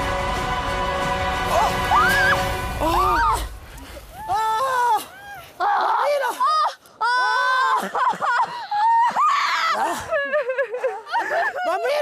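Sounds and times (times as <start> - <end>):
people screaming in fright: 1.6 - 3.5, 4.1 - 10.1.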